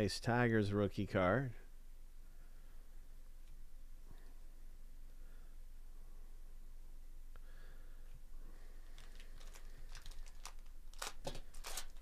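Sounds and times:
foil wrapper tearing and crinkling: 8.9s - 12.0s.

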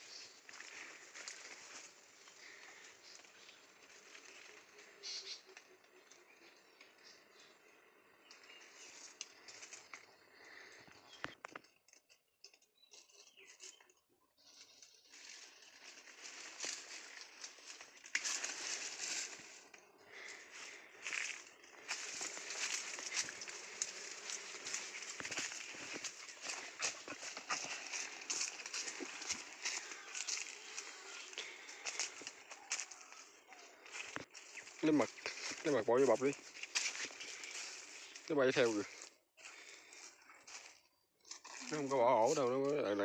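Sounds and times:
footsteps on dry leaves: 0.0s - 5.4s, 14.5s - 43.0s
leaves and branches rustling: 0.0s - 6.9s, 8.2s - 12.1s, 14.6s - 43.0s.

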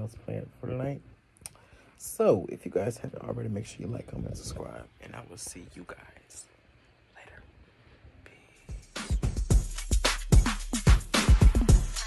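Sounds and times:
man speaking softly: 0.0s - 1.2s, 2.0s - 7.6s, 8.2s - 8.7s
soft whisper: 5.2s - 8.9s.

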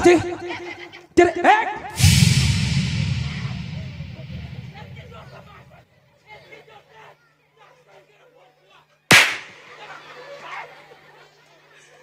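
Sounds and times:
loud sharp bang: 2.0s - 5.9s, 9.1s - 9.6s
steady low hum: 2.0s - 6.0s.

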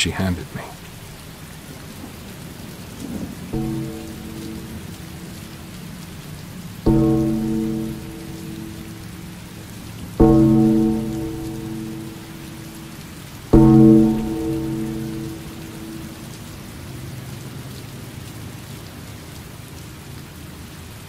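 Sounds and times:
steady rain falling: 0.0s - 21.0s
low ringing tone struck: 3.6s - 16.6s.

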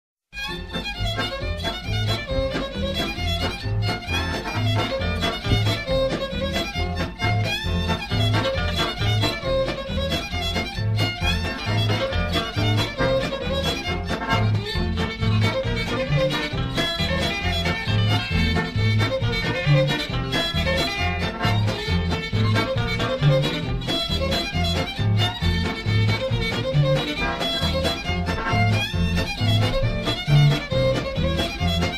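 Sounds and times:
bowed fiddle melody: 0.4s - 31.9s
polka band with alternating bass: 0.4s - 31.9s.

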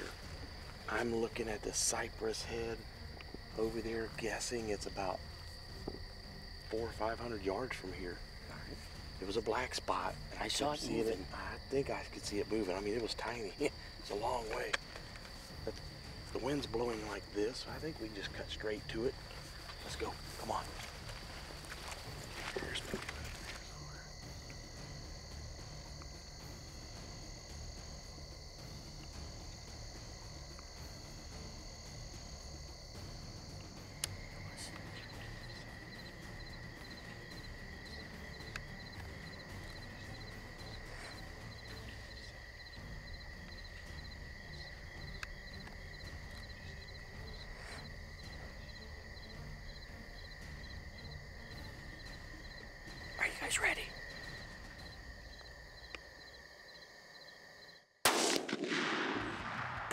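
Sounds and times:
night insects chorus: 0.0s - 59.9s.

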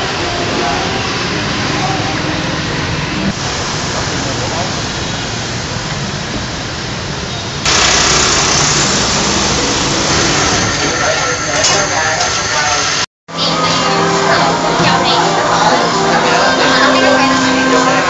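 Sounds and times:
indistinct voices: 0.0s - 6.1s, 8.4s - 18.0s
loud hissy noise: 0.0s - 18.0s.

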